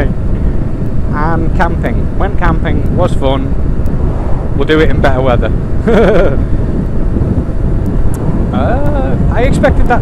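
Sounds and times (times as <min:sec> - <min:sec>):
wind buffeting microphone: 0:00.0 - 0:10.0
person laughing: 0:05.8 - 0:06.6.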